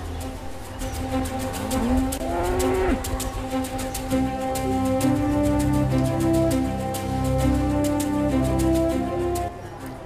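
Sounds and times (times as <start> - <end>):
background music: 0.0 - 10.0
cow mooing: 1.7 - 3.1.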